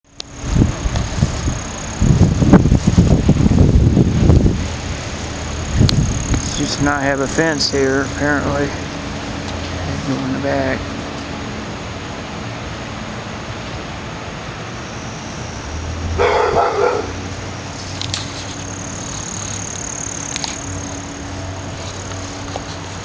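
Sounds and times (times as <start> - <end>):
dog barking: 16.2 - 17.3.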